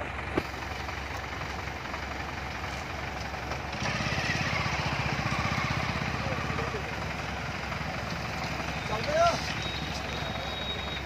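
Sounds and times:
vehicle engine running at low revs: 0:00.0 - 0:11.0.

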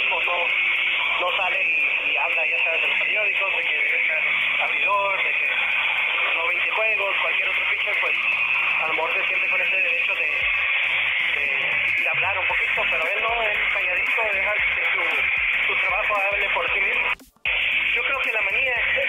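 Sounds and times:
indistinct speech: 0:00.0 - 0:10.5, 0:11.2 - 0:19.0
loud steady hiss: 0:00.0 - 0:19.0.

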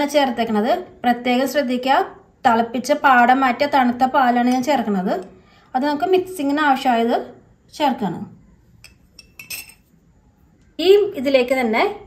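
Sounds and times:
woman speaking: 0:00.0 - 0:08.4, 0:10.8 - 0:12.0
spoon clinking on ceramic bowl: 0:08.8 - 0:09.9.

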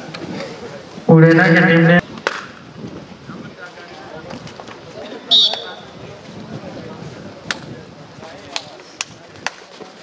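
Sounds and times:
crowd murmur: 0:00.0 - 0:02.2.

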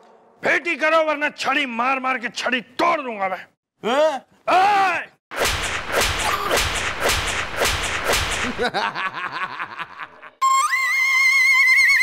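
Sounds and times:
whip-like cracks: 0:05.3 - 0:08.7
whooshes: 0:05.4 - 0:08.6.

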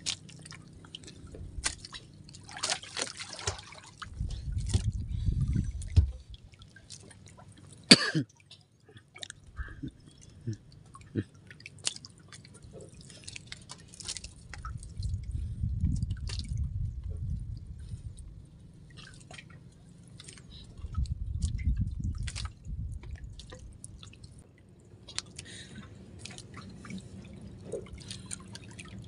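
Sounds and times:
water dripping and lapping: 0:00.0 - 0:29.0
low rumble: 0:04.0 - 0:06.6, 0:14.4 - 0:18.8, 0:20.5 - 0:24.4.

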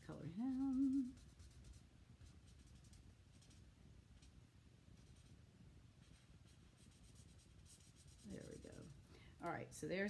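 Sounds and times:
marker scratching on cardstock: 0:06.0 - 0:08.9.

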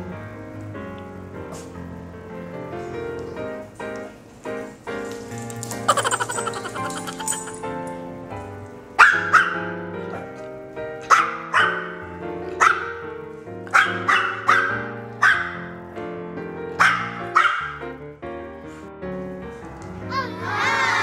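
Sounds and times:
background music: 0:00.0 - 0:21.0
small dogs yapping: 0:05.9 - 0:07.6.

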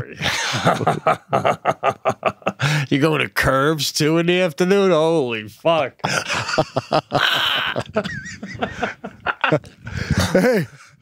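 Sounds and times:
men laughing into microphones: 0:00.2 - 0:02.8, 0:06.0 - 0:11.0.

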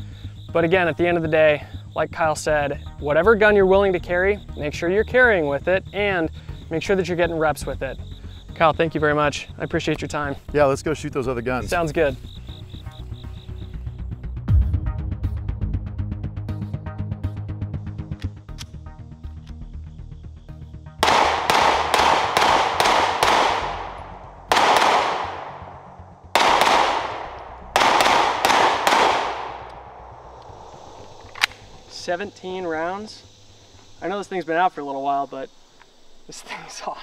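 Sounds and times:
background music: 0:00.0 - 0:34.3
pistol shots echoing: 0:21.0 - 0:31.8.

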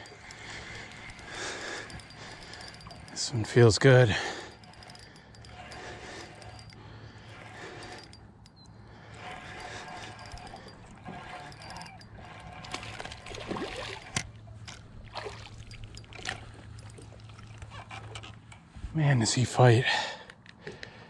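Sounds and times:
fishing reel being cranked: 0:00.0 - 0:18.6.

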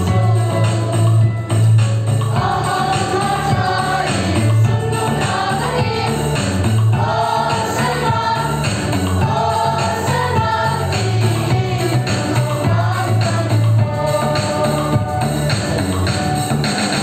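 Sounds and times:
children's choir singing a hymn: 0:00.0 - 0:01.6, 0:02.3 - 0:16.0
instrumental accompaniment with bass: 0:00.0 - 0:17.0.

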